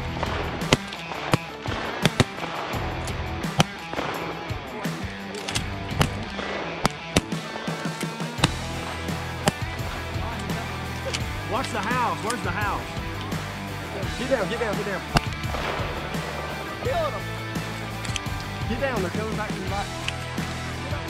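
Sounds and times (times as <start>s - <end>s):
background music with bass line: 0.0s - 21.0s
shotgun shots: 0.1s - 12.4s, 14.9s - 16.7s.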